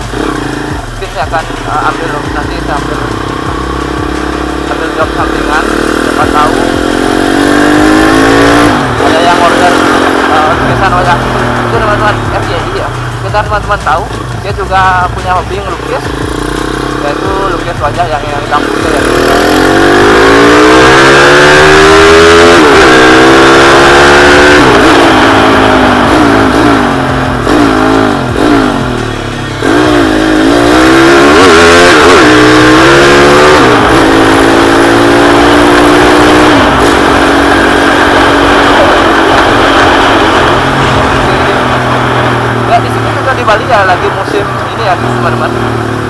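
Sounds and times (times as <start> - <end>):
motorcycle engine revving: 0.0 - 46.0.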